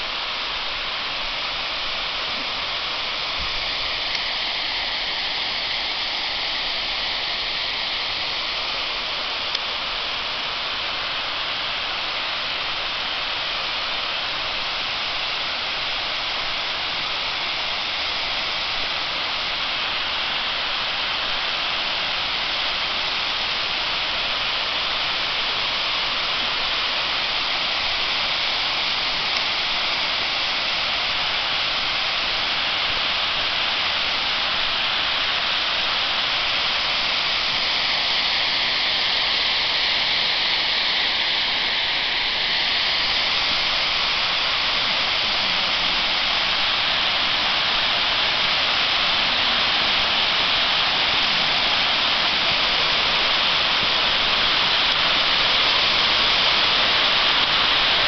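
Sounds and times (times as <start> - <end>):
water cascading down dam: 0.0 - 58.0.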